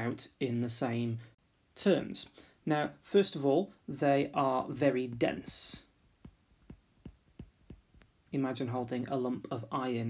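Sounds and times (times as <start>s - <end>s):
stylus tapping on glass screen: 5.4s - 8.2s.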